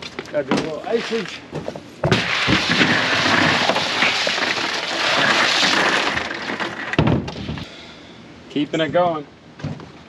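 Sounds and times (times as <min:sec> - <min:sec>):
ice pieces clattering into box: 0:02.3 - 0:07.0.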